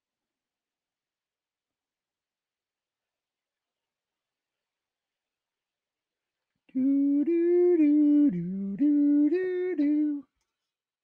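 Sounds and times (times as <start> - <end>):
man humming a tune: 6.7 - 10.2.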